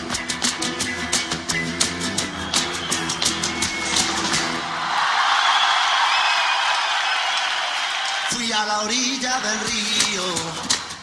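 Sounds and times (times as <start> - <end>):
guitar music: 0.0 - 4.8
audience applause: 1.9 - 10.9.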